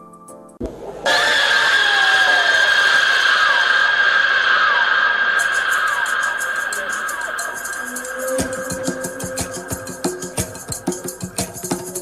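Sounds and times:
shrill sustained tone over hiss: 1.0 - 12.0
short falling squeals: 1.1 - 10.1.

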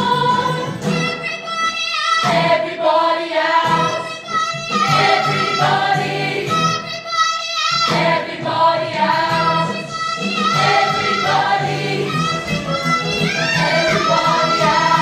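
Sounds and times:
group singing: 0.0 - 0.9, 2.2 - 6.9, 7.8 - 15.0
girl singing lead: 0.0 - 15.0
instrumental accompaniment: 3.6 - 7.2, 7.9 - 15.0.

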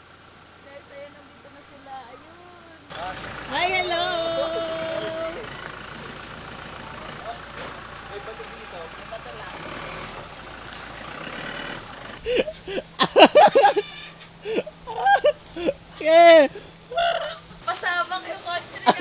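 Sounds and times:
car on dirt track: 0.0 - 19.0
faint voices: 0.6 - 5.9.

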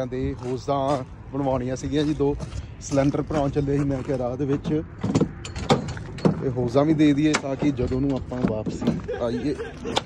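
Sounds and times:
truck door clicks and knocks: 4.7 - 6.5.

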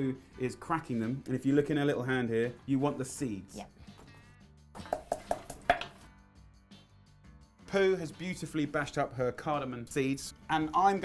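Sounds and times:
stone pestle pounding in mortar: 4.8 - 6.0.

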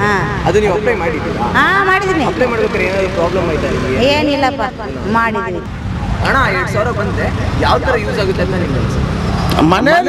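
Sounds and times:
man speaking: 0.0 - 4.0, 6.2 - 10.0
road traffic rumble: 0.0 - 10.0.

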